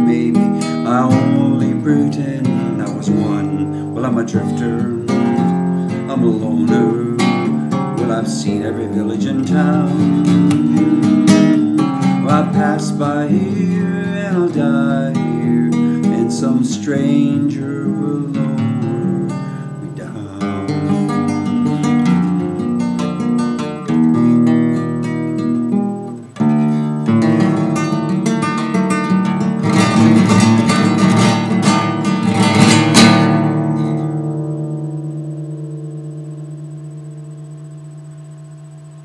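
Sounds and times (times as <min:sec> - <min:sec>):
acoustic guitar playing blues: 0:00.0 - 0:36.8.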